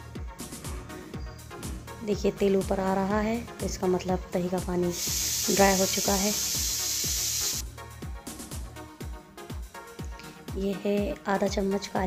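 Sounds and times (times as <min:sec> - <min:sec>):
background music with steady beat: 0:00.0 - 0:12.0
meat sizzling in oil: 0:04.9 - 0:07.6.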